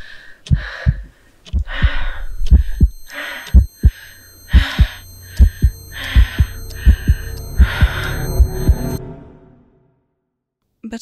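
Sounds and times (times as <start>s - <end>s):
low hum: 0.0s - 10.0s
heartbeat thumps: 0.5s - 9.0s.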